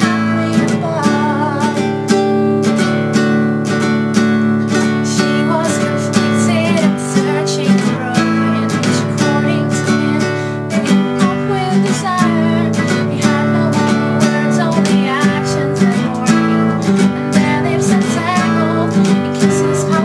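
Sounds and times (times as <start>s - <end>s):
young woman singing: 0.0s - 3.1s, 4.4s - 20.0s
classical guitar strumming chords: 0.0s - 20.0s.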